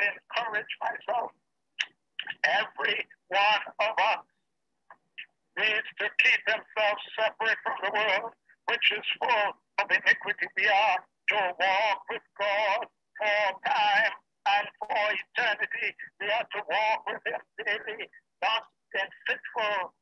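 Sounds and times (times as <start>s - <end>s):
person speaking over video call: 0.0s - 20.0s.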